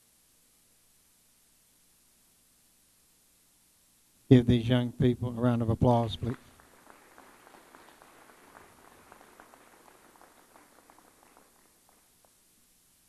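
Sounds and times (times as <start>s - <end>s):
audience clapping: 5.9s - 12.4s.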